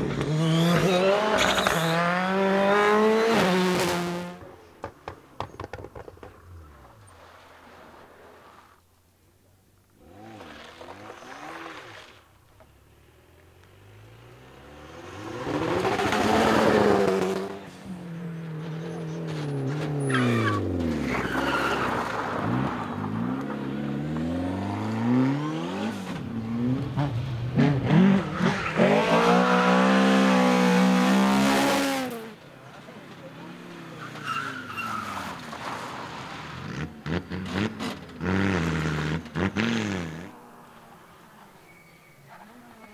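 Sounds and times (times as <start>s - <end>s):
rally car engines revving: 0.0s - 4.7s, 10.0s - 42.9s
tyres skidding on gravel: 4.9s - 8.8s, 10.0s - 12.8s, 15.0s - 24.8s, 31.5s - 42.9s.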